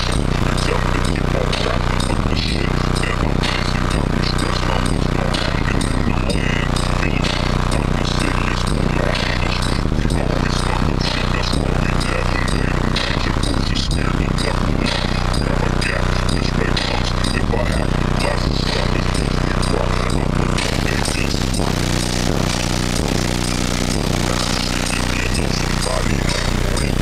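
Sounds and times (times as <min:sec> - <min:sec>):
loud music with heavy bass: 0:00.0 - 0:27.0.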